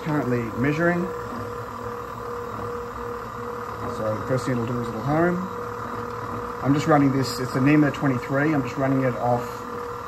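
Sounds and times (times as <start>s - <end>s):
stepper motor whine: 0.0s - 10.0s.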